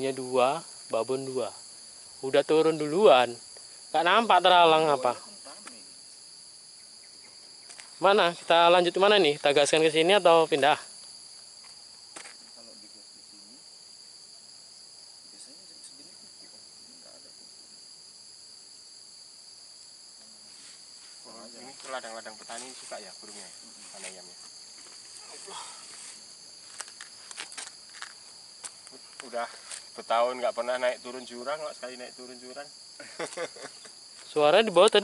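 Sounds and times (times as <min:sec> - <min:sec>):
high-pitched insect chorus: 0:00.0 - 0:35.0.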